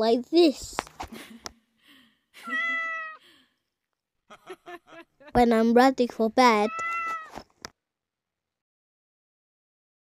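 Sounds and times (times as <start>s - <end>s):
cat meowing: 2.4s - 3.2s, 6.7s - 7.4s.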